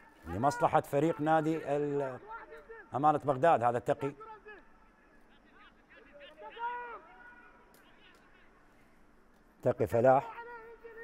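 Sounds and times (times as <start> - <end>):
low stadium background noise: 0.0 - 11.0.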